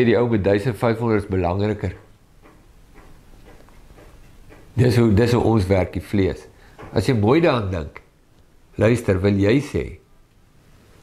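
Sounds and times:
low room hum: 0:00.0 - 0:11.0
faint ticking: 0:01.6 - 0:05.5.

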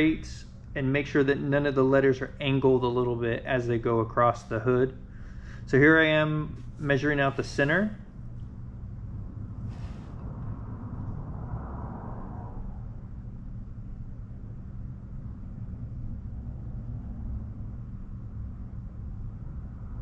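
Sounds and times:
low background hum and rumble: 0:00.0 - 0:20.0
faint scratchy sound: 0:05.8 - 0:08.0.

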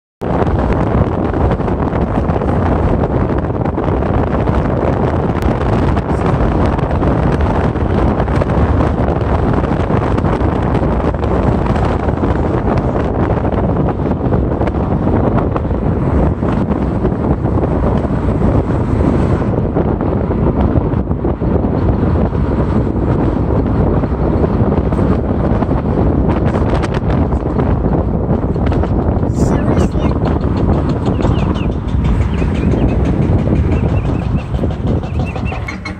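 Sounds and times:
vehicle road noise: 0:00.2 - 0:35.9
wind buffeting microphone: 0:00.2 - 0:35.9.

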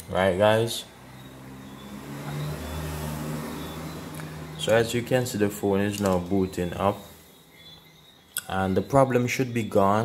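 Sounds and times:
low motor hum: 0:00.9 - 0:07.8.

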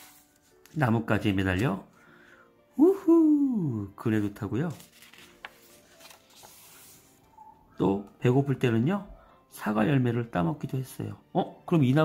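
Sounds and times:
paper page turning: 0:00.0 - 0:01.3, 0:04.1 - 0:07.3.

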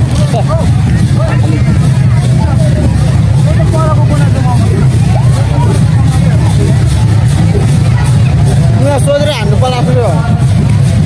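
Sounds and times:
crowd voices talking: 0:00.0 - 0:11.0
loud low rumble: 0:00.0 - 0:11.0.

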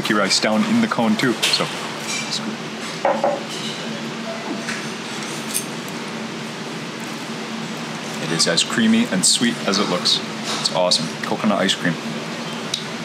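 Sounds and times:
steady background hum: 0:00.0 - 0:13.0.

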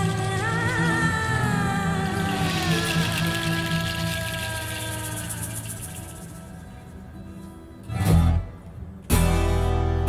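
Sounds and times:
seed-pod shaker rattle: 0:01.9 - 0:07.0.

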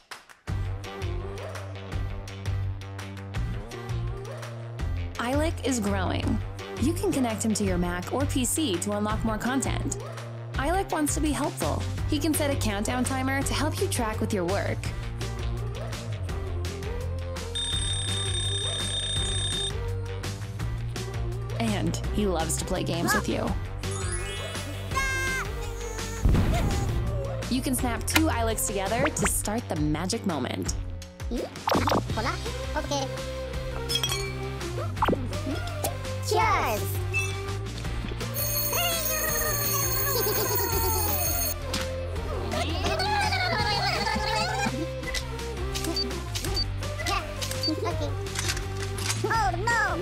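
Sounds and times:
background music: 0:00.0 - 0:50.0
electronic timer alarm tones: 0:17.6 - 0:19.7, 0:38.3 - 0:41.6
bell-like ringing chime: 0:38.4 - 0:41.6.

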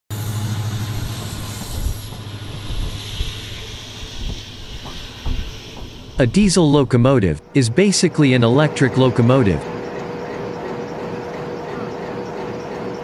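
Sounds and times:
hiss: 0:00.1 - 0:06.8
locomotive engine hum: 0:00.1 - 0:13.0
scattered knocks: 0:01.2 - 0:06.8.

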